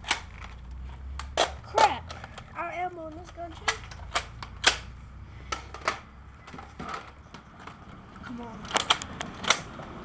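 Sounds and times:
toy blaster plastic clicks: 0:08.6 - 0:09.7.

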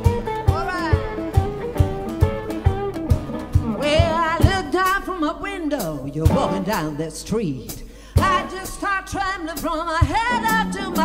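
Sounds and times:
low cajon thumps: 0:00.0 - 0:04.8
blues electric guitar: 0:00.0 - 0:07.0, 0:07.9 - 0:11.0.

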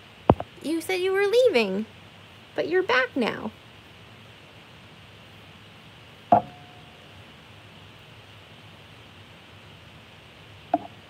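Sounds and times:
faint room noise: 0:00.0 - 0:11.0
hard object knock with ringing: 0:06.3 - 0:06.7.

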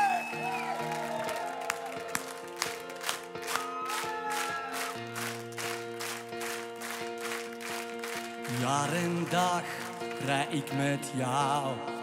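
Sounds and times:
keyboard chords: 0:00.0 - 0:12.0.

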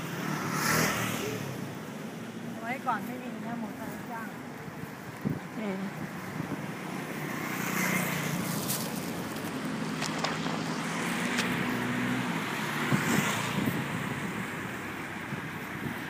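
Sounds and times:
wind on microphone: 0:04.8 - 0:07.5, 0:08.4 - 0:16.0.

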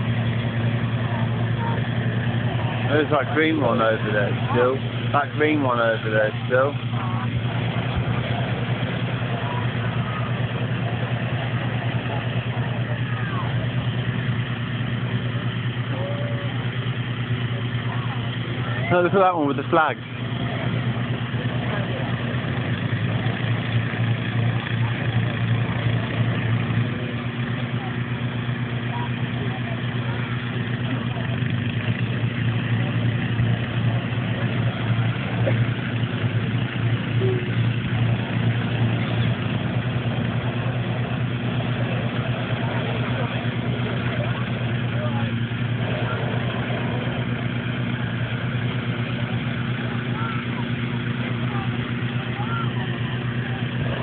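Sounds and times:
inflator fan engines droning: 0:00.0 - 0:54.0.

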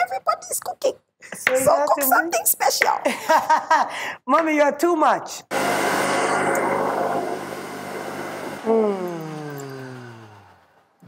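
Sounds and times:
blender motor whirring: 0:05.5 - 0:11.0.

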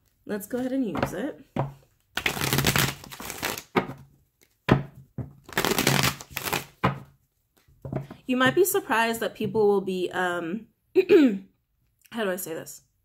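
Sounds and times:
cards being shuffled: 0:02.0 - 0:04.6, 0:05.4 - 0:08.2.

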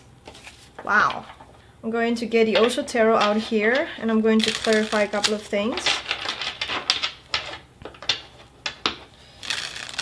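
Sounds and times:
cards being shuffled: 0:00.2 - 0:01.4, 0:09.4 - 0:10.0.

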